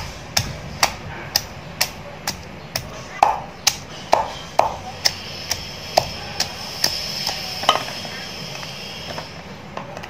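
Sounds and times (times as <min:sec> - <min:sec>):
wooden pestle pounding in mortar: 0:00.0 - 0:07.9.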